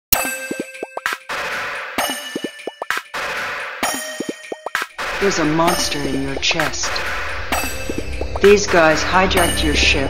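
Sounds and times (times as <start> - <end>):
synth bloops dropping in pitch: 4.2 - 9.9
sharp hit: 4.8 - 10.0.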